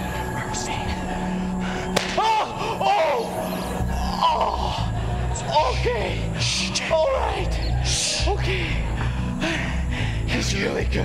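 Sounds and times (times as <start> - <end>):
background music: 0.0 - 11.0
sharp crack: 1.9 - 2.3
voices rising and falling: 2.2 - 9.0.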